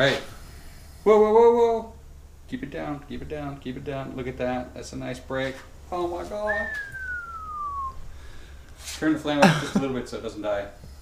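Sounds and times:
person whistling falling note: 6.4 - 8.1
low hum: 6.5 - 8.7.

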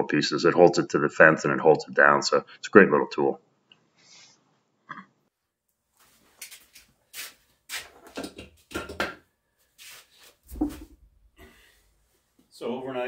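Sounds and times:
rustles and knocks: 7.7 - 9.3, 9.9 - 11.1.

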